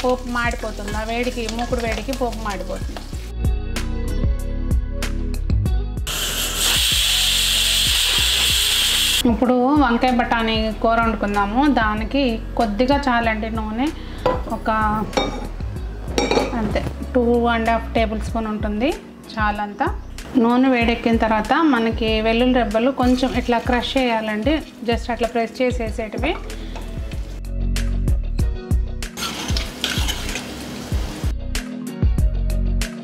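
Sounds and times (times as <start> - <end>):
garlic sizzling in hot oil: 0.0 - 3.3, 6.1 - 9.3, 21.6 - 27.4, 29.2 - 31.3
background music with low beat: 0.0 - 6.1, 6.8 - 29.7, 31.0 - 33.0.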